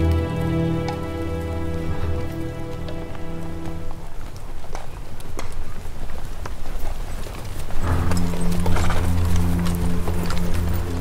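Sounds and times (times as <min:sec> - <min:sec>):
sustained orchestral chord: 0:00.0 - 0:04.2, 0:07.8 - 0:11.0.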